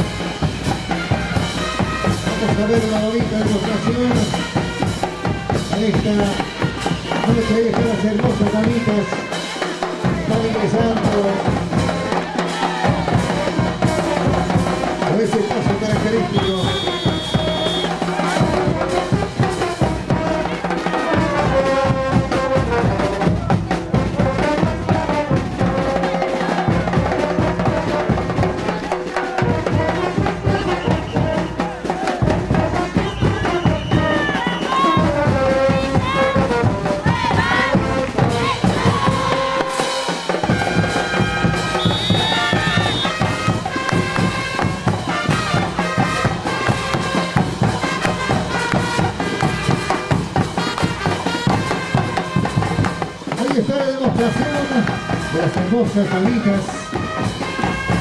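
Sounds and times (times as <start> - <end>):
brass band with drums: 0.0 - 58.0.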